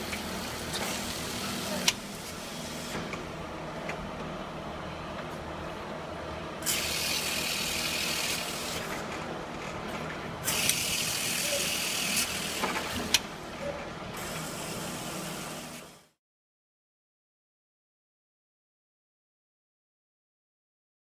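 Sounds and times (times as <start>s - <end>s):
hissing pressure blasts: 6.6s - 8.9s, 10.4s - 13.1s.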